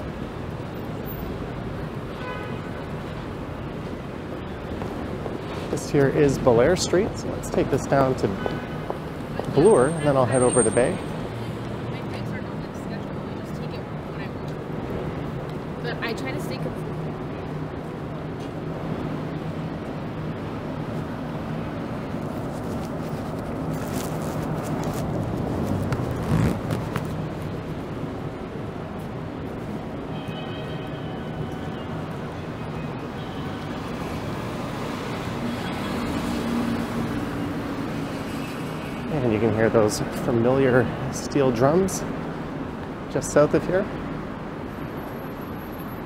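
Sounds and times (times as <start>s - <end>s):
cars going by: 0.0s - 46.0s.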